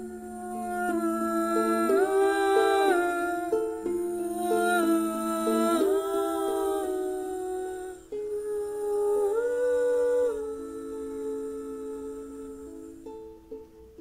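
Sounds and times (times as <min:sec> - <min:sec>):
humming in vocal harmony: 0:00.0 - 0:13.6.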